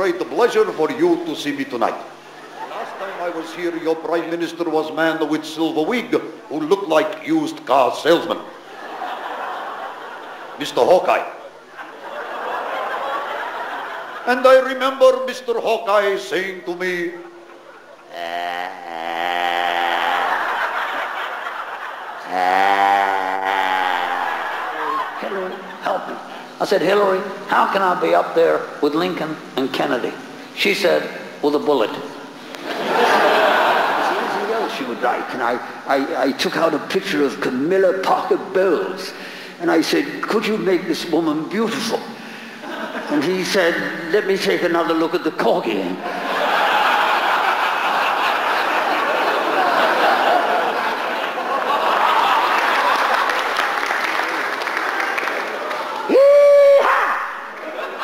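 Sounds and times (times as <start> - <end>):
audience laughing: 2.1 - 3.8, 8.5 - 14.4, 17.2 - 26.6, 32.5 - 35.3, 42.3 - 44.0, 46.0 - 56.1, 57.3 - 58.0
long held vocal sounds: 18.1 - 20.6, 22.3 - 25.1.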